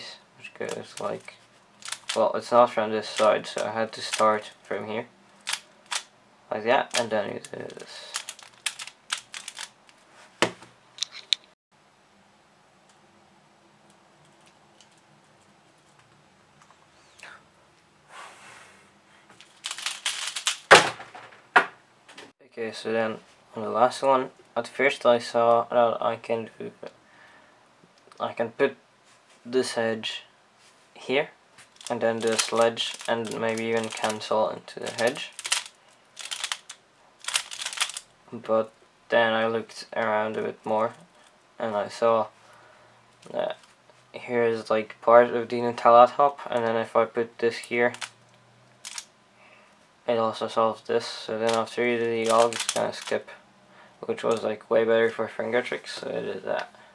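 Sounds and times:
faint rustle of puzzle pieces: 0.6s - 6.0s, 6.9s - 10.4s, 19.1s - 20.7s, 30.5s - 38.8s, 39.8s - 44.2s, 47.4s - 50.0s, 51.1s - 54.5s
sharp plastic clacks: 0.7s - 2.2s, 5.3s - 6.1s, 6.9s - 11.6s, 19.4s - 21.7s, 31.6s - 34.2s, 34.8s - 38.1s, 47.9s - 49.1s, 51.4s - 53.2s
plastic puzzle clicking: 1.8s - 2.2s, 5.4s - 6.0s, 6.9s - 9.8s, 19.4s - 20.7s, 31.8s - 34.2s, 34.8s - 38.0s, 47.9s - 48.1s, 48.8s - 49.1s, 51.5s - 53.2s.

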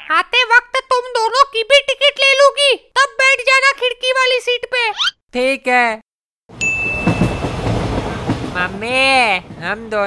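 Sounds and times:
train rumbling and rattling: 6.6s - 10.0s.

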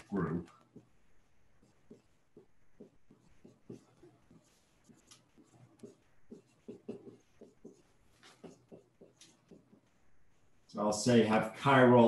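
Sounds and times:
marker writing on whiteboard: 0.0s - 10.7s.

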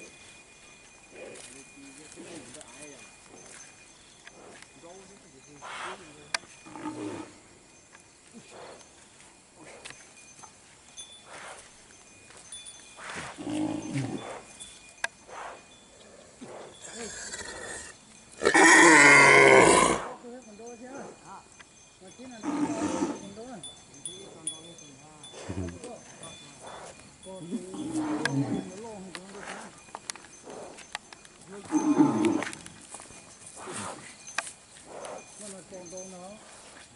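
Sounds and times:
bull bellowing: 13.0s - 14.5s, 15.3s - 20.2s, 22.4s - 23.4s, 27.5s - 29.8s, 31.5s - 32.8s.

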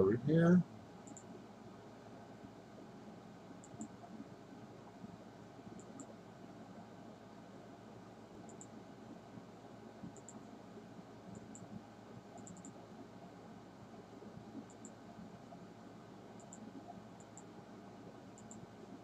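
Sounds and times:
faint steady hiss: 0.0s - 19.0s
computer mouse clicks: 1.0s - 1.3s, 3.6s - 4.2s, 5.8s - 6.2s, 8.4s - 8.8s, 10.0s - 10.4s, 11.3s - 11.8s, 12.4s - 12.8s, 14.6s - 15.0s, 16.4s - 17.5s, 18.4s - 18.6s.

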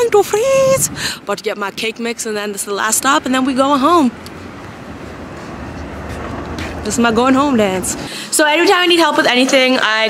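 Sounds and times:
traffic rumble and hiss: 0.0s - 9.6s.

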